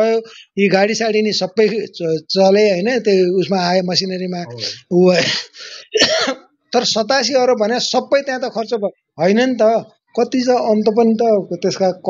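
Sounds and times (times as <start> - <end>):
person speaking: 0.0 - 6.1
person clearing throat: 4.4 - 6.5.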